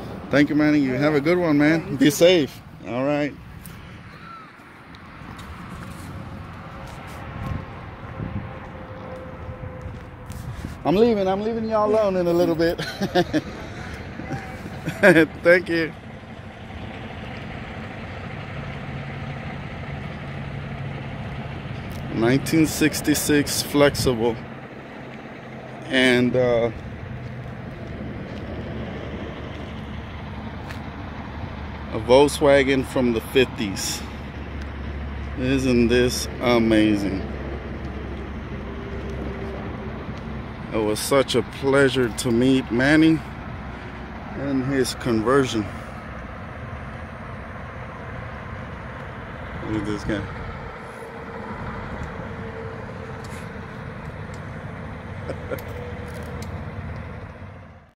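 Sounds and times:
vehicle engine idling: 0.0s - 57.9s.

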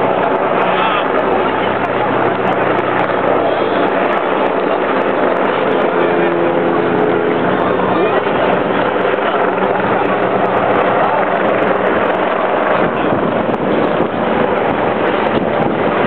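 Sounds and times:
crowd chatter: 0.0s - 16.0s
helicopter rotor drone: 0.0s - 16.0s.

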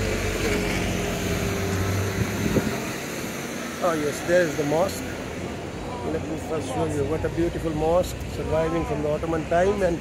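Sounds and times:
motor scooter passing by: 0.0s - 5.5s.

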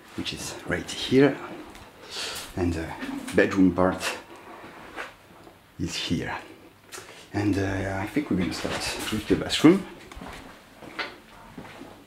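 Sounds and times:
footsteps on tiled floor: 8.3s - 12.0s.

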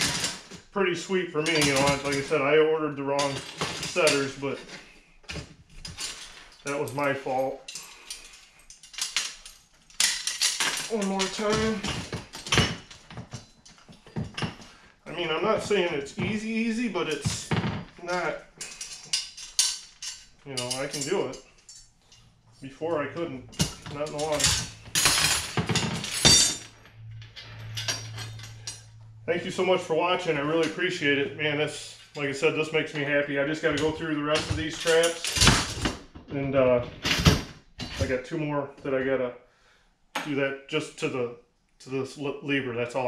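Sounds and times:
metal trap clinking: 23.4s - 28.9s.

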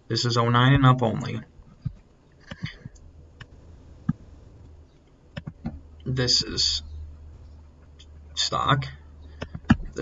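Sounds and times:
low steady hum: 0.0s - 10.0s
computer mouse clicks: 5.3s - 5.8s.

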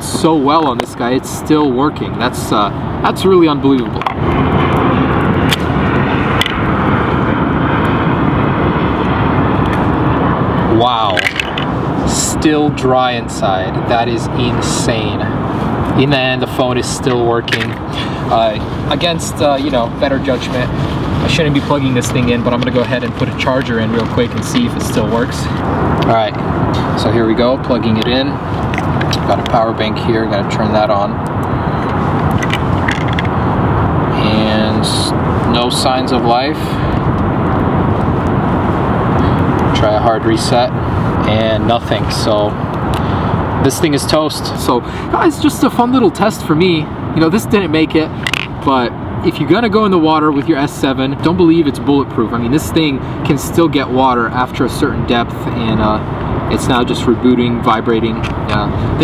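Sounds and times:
loud steady noise: 0.0s - 51.7s
outdoor background noise: 0.0s - 59.0s.

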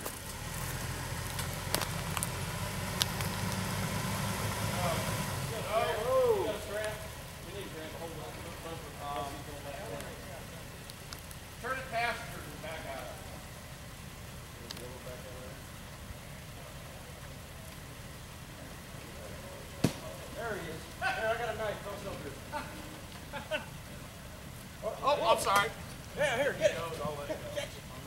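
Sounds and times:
car engine idling: 0.0s - 28.0s
men's voices: 4.5s - 28.0s.

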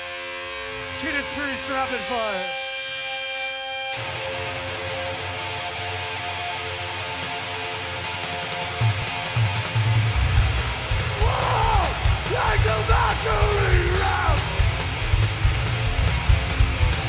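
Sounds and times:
distorted electric guitar chord: 0.0s - 17.0s
high bending guitar wails: 0.0s - 17.0s
heavy metal band playing live: 0.2s - 17.0s.

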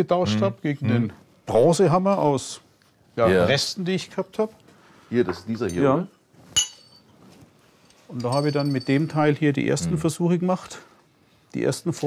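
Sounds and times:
metal hammer clinking on metal: 6.6s - 7.1s, 8.1s - 9.4s.

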